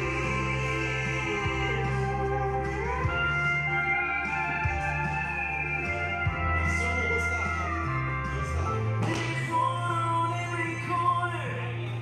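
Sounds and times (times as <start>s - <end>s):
sustained guitar notes: 0.0s - 10.6s
steady bass line: 0.0s - 12.0s.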